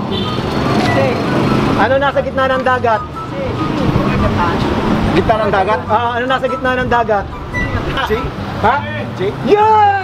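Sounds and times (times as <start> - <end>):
vehicle engine rumbling: 0.0 - 9.7.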